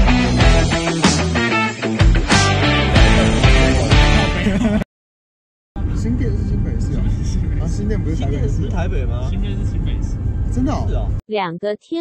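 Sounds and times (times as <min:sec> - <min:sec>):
young men talking: 0:05.8 - 0:11.1
car road and engine rumble: 0:05.8 - 0:11.2.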